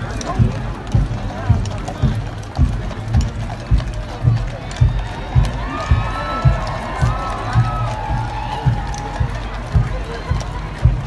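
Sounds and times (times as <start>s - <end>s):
bass drum beating: 0.0s - 11.0s
crowd chatter: 0.0s - 11.0s
marching band music: 0.0s - 11.0s.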